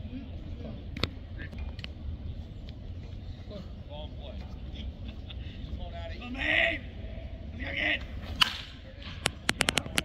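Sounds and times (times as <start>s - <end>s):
baseball bat cracking a ball: 8.3s - 9.8s.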